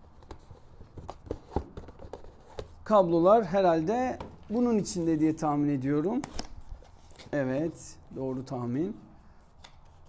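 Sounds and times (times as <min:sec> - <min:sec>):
hands handling cardboard box: 0:00.0 - 0:03.2.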